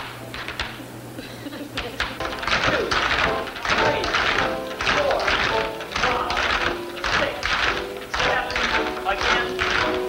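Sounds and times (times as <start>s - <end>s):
tap shoes tapping on floor: 1.8s - 10.0s
music: 2.1s - 10.0s.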